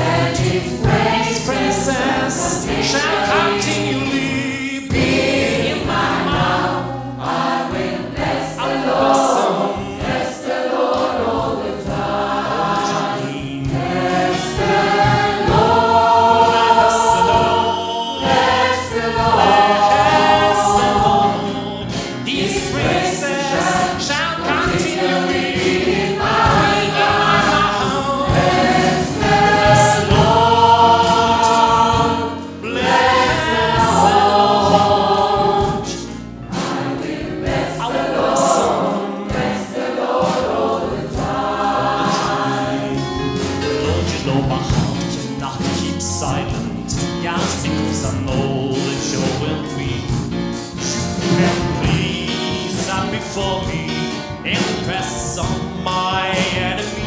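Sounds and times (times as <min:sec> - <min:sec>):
gospel choir singing: 0:00.0 - 0:57.0.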